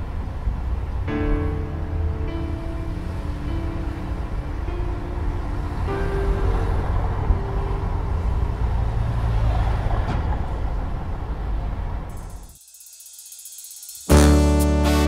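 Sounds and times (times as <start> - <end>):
city traffic rumble: 0.0 - 12.6
soft keyboard notes: 1.0 - 9.1.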